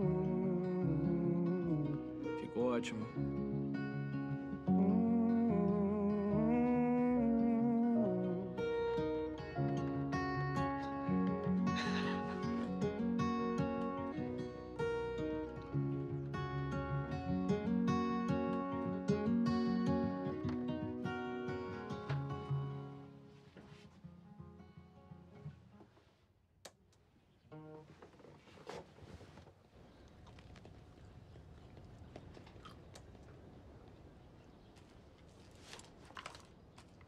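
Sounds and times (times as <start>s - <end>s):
acoustic guitar playing: 0.0s - 25.8s.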